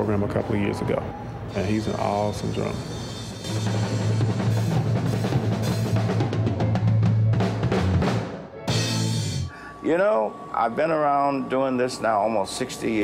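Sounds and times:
child playing drum kit: 2.8s - 9.5s.

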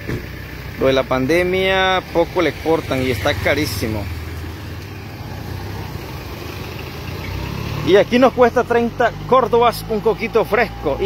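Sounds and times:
car engine running: 0.0s - 11.0s
street noise: 0.0s - 11.0s.

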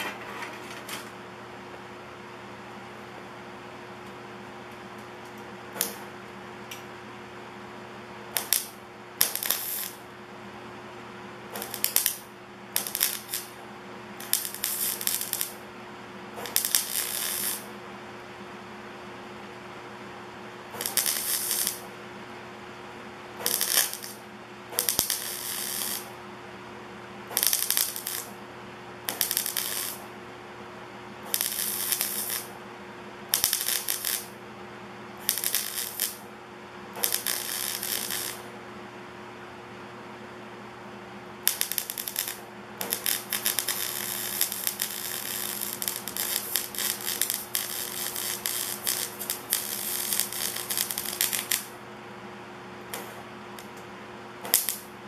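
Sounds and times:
steady hum: 0.0s - 55.0s
welding arc crackle: 5.8s - 6.1s, 8.4s - 10.1s, 11.5s - 13.6s, 14.2s - 15.6s, 16.4s - 17.7s, 20.7s - 21.9s, 23.4s - 24.2s, 24.8s - 26.2s, 27.3s - 28.4s, 29.0s - 30.1s, 31.3s - 32.6s, 33.3s - 34.4s, 35.2s - 36.3s, 37.0s - 38.5s, 41.4s - 51.8s, 52.9s - 53.8s, 54.4s - 55.0s.

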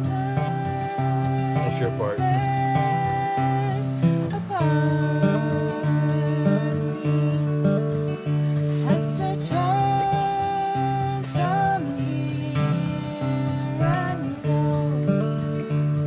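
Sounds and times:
person singing long notes: 0.0s - 15.7s
acoustic guitar strumming chords: 0.0s - 16.0s.

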